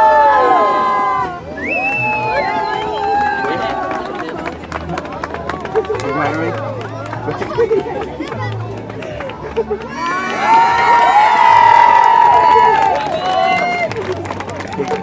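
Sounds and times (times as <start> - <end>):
crowd cheering and shouting: 0.0 - 4.4, 9.8 - 14.1
crowd chattering and calling out: 0.0 - 15.0.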